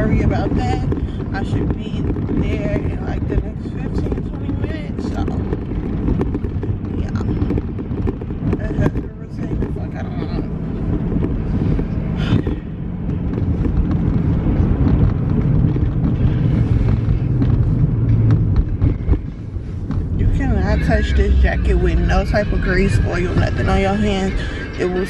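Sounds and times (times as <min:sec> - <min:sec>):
car engine idling: 0:00.0 - 0:25.0.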